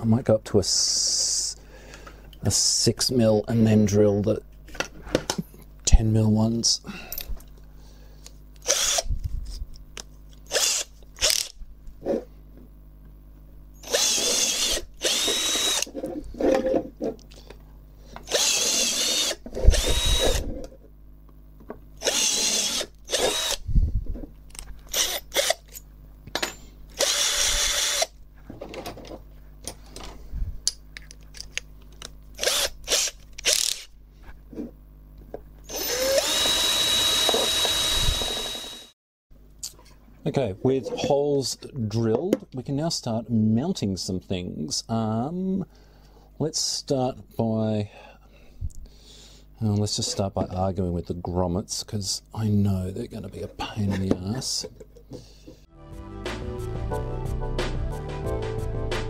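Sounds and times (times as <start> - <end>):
cordless drill whining: 8.6 - 9.1, 10.5 - 11.5, 13.8 - 15.9, 18.2 - 20.6, 22.0 - 23.6, 24.9 - 25.6, 27.0 - 28.1, 32.4 - 33.9, 35.7 - 39.0.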